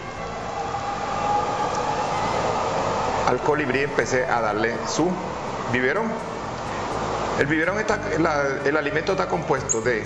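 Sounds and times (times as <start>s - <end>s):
mechanical drone with whine: 0.0s - 10.0s.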